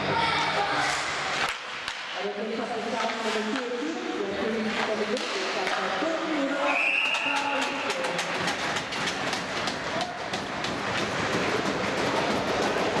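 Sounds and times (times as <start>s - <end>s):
ice rink crowd noise: 0.0s - 13.0s
referee's whistle: 6.7s - 7.4s
sharp clacks: 7.0s - 13.0s.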